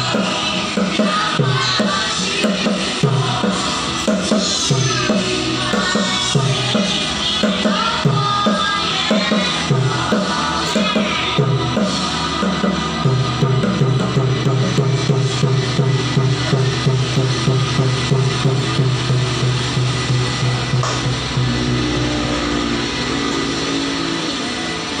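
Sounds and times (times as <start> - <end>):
bongo drums: 0.0 - 25.0
music with sustained low notes: 11.4 - 25.0.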